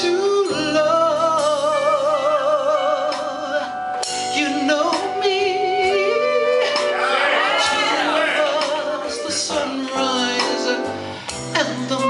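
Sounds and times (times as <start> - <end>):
man singing with vibrato: 0.0 - 12.0
sustained instrumental accompaniment: 0.7 - 11.6.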